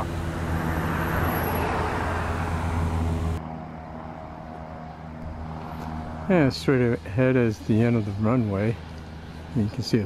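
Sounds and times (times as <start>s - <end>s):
propeller airplane engine drone: 0.0s - 10.0s.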